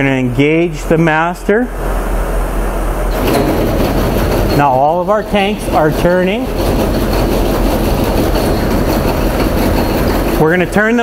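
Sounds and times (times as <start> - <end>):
hydraulic hum: 0.6 - 11.0
mechanical running noise: 3.0 - 11.0.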